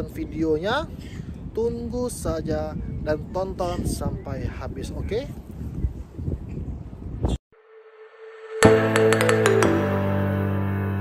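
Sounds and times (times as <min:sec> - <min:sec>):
wind rumbling on microphone: 0:00.0 - 0:07.4.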